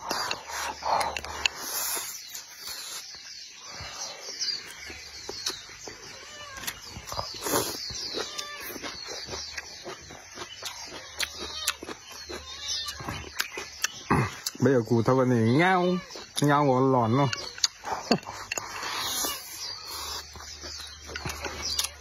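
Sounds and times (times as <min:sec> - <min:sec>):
person chewing and slurping: 0:00.0 - 0:03.2, 0:04.0 - 0:14.6, 0:17.2 - 0:22.0
small birds chirping: 0:00.0 - 0:22.0
wet mouth clicks and smacks: 0:09.5 - 0:14.6, 0:17.3 - 0:19.4.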